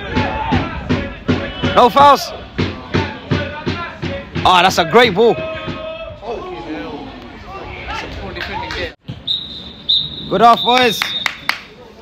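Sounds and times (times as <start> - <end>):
people shouting: 0.0 - 7.1
referee's whistle blast: 9.2 - 11.6.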